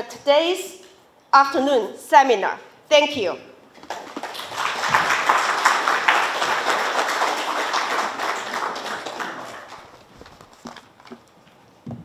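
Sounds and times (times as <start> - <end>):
audience applauding: 3.8 - 10.2.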